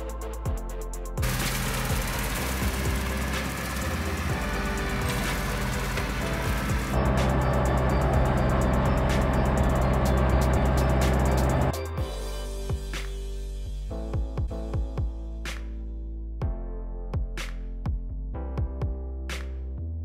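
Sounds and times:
background music with beat: 0.0s - 19.8s
tractor engine running: 1.2s - 11.8s.

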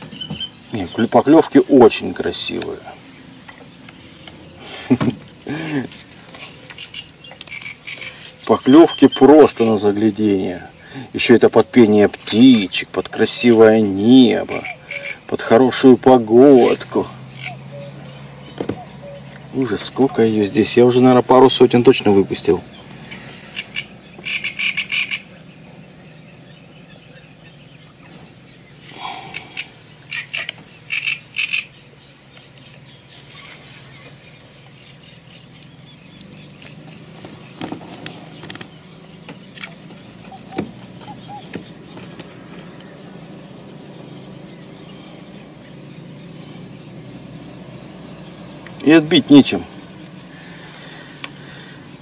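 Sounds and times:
frogs croaking: 0.0s - 52.0s.

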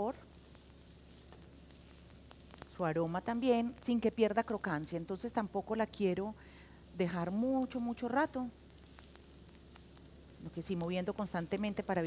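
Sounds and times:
onion sizzling in a pan: 0.0s - 12.0s.

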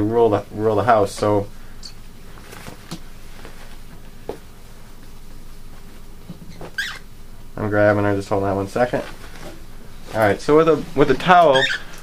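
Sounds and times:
cloth towel rustling: 2.2s - 6.8s, 8.6s - 12.0s
cockatiel call: 6.8s - 7.0s, 11.5s - 11.9s.

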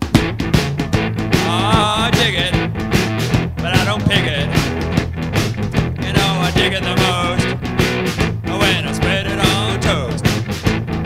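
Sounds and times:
drum beat: 0.0s - 11.0s
electric guitar: 0.0s - 11.0s.

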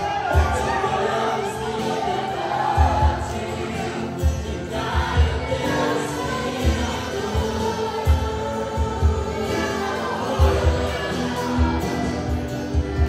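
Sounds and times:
voices singing together: 0.0s - 13.0s
worship band playing: 0.0s - 13.0s.

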